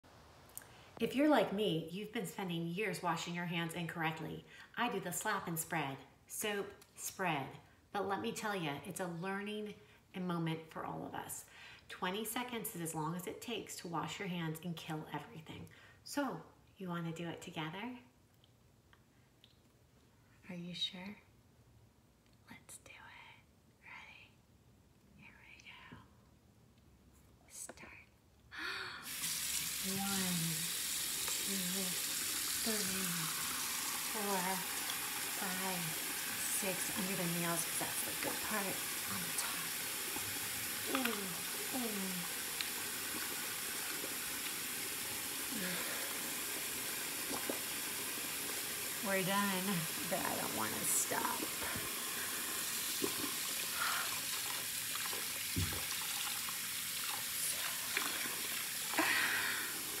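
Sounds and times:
tap water running into sink: 29.1 - 60.0
tap running into a sink: 55.0 - 56.4
low thump: 55.6 - 55.9.

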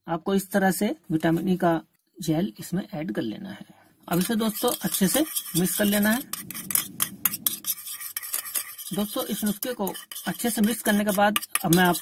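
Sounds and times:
metal spoon scraping plastic bowl: 4.1 - 12.0.

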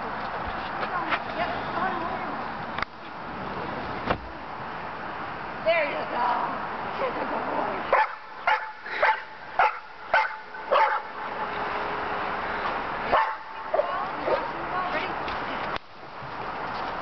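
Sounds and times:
dog barking: 7.9 - 11.1, 13.1 - 14.5.

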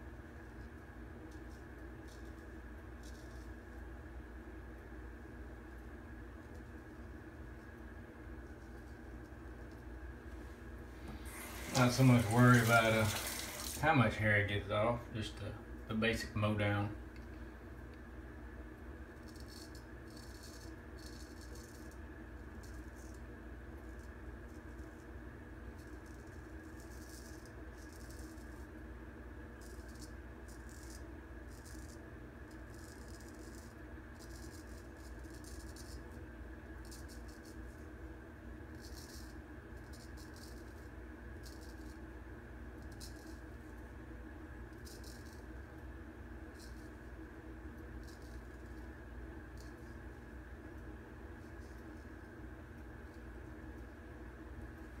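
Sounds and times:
steady low hum: 0.0 - 55.0
razor scraping beard stubble: 11.2 - 13.9.

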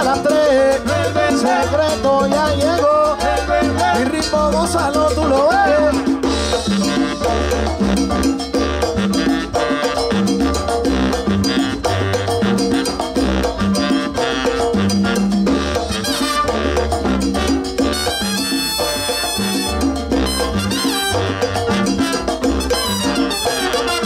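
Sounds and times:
salsa band playing: 0.0 - 24.0.

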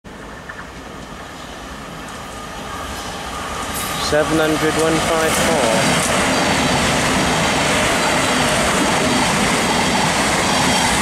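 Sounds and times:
electric train approaching: 0.1 - 11.0.

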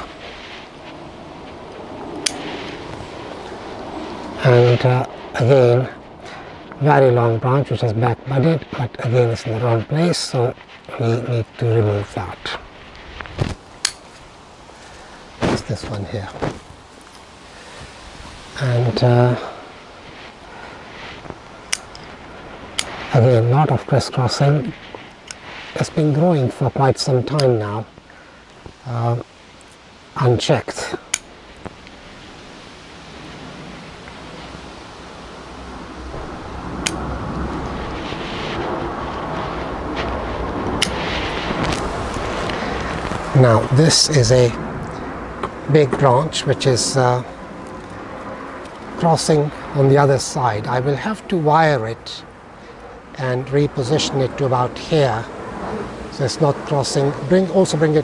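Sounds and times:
rumbling background noise: 0.0 - 58.0
pruning shears snipping branch: 2.2 - 2.4, 13.3 - 14.2, 21.6 - 23.0, 36.8 - 37.0.

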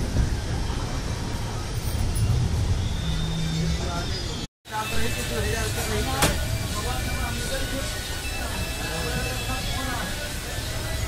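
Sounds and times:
train rumbling and rolling: 0.0 - 4.5
faint voices: 3.8 - 11.0.

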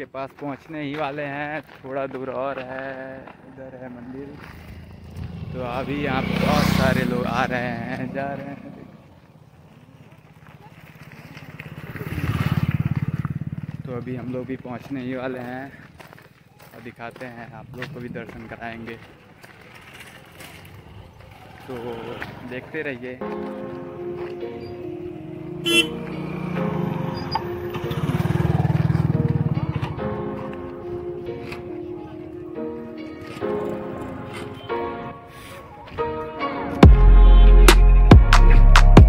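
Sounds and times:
motorcycle engine passing by: 3.2 - 15.9, 17.3 - 32.6.

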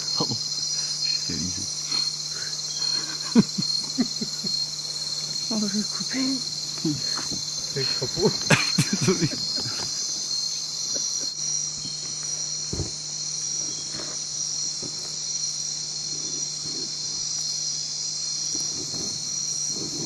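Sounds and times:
insects trilling: 0.0 - 20.0.

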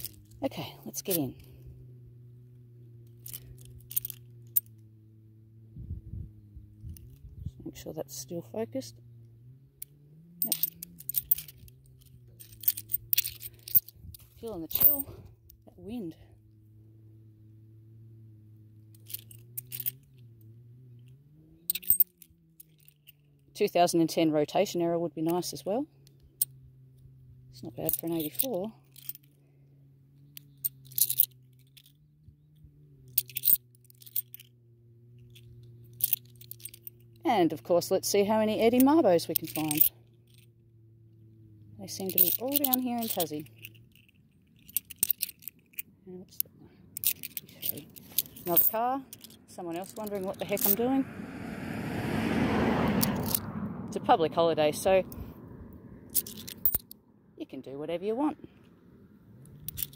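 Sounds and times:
coins clinking: 3.1 - 4.8, 10.4 - 15.2, 18.8 - 20.1, 21.7 - 23.2, 30.3 - 32.0, 33.1 - 34.5, 35.2 - 37.2, 38.7 - 40.5, 41.9 - 50.9, 56.1 - 57.0, 59.4 - 59.9
coins scraping and clicking: 3.1 - 4.8, 10.4 - 15.2, 18.9 - 20.1, 21.7 - 23.2, 30.3 - 32.0, 33.1 - 34.5, 35.2 - 37.2, 38.8 - 40.5, 41.9 - 45.9, 46.9 - 50.9, 56.1 - 57.0, 59.4 - 59.9.

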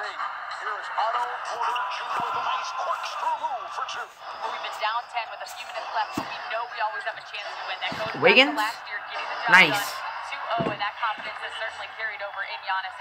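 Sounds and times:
arena crowd noise: 0.0 - 13.0
commentator talking: 7.4 - 13.0.

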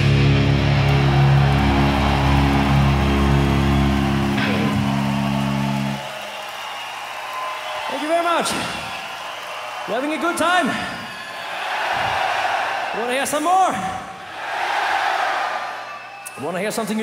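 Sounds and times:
metal band chord on guitars: 0.0 - 1.3
crowd cheering: 0.0 - 17.0.

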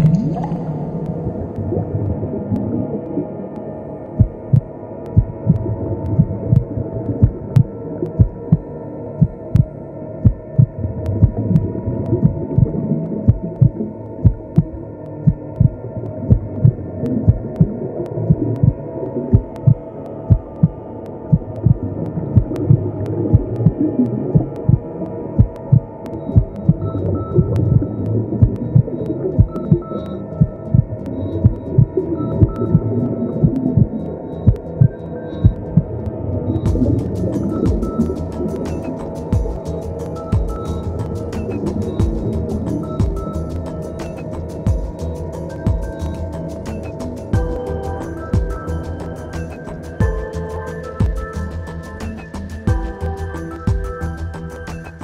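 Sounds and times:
continuous low hum: 0.0 - 55.0
low heartbeat-like thumps: 4.2 - 35.9, 36.7 - 51.8, 52.6 - 54.4.

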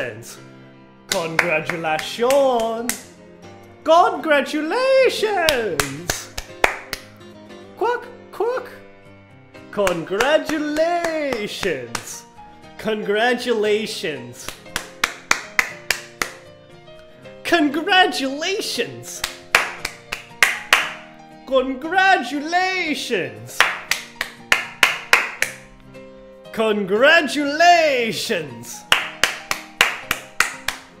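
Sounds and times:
hand clapping: 1.1 - 3.2, 5.4 - 7.2, 9.8 - 12.2, 14.4 - 16.5, 19.1 - 21.1, 23.5 - 25.8, 28.8 - 31.0.

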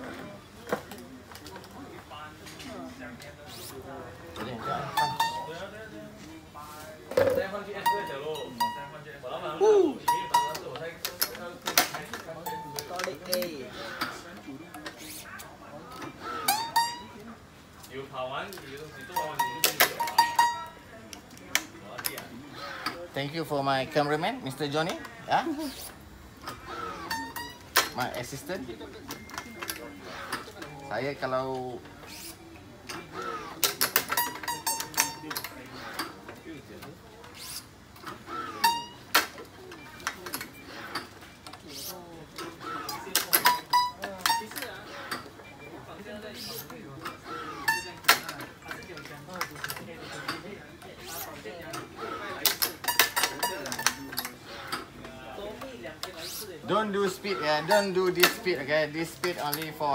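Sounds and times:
voices talking: 0.0 - 59.9.

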